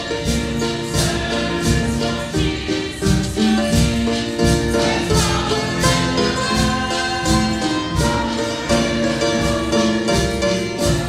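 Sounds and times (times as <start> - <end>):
choir singing a hymn: 0.0 - 11.0
instrumental accompaniment: 0.0 - 11.0
steady beat: 0.0 - 11.0.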